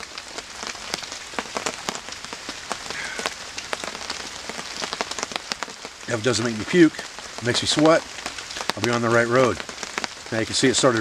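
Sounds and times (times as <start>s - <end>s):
rain falling: 0.0s - 11.0s
raindrops ticking: 0.0s - 11.0s.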